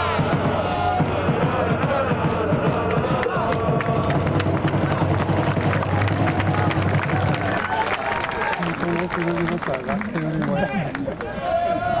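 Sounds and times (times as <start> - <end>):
people calling out and talking: 0.0 - 12.0.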